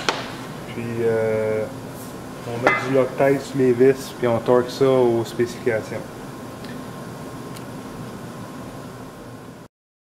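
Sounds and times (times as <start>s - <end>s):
faint steady hum: 0.0s - 9.7s
workshop room hiss: 0.0s - 9.7s.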